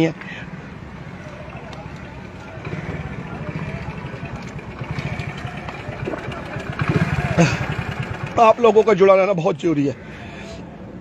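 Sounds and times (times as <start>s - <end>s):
faint voices: 0.0s - 8.9s
vehicle engine idling: 0.6s - 10.8s.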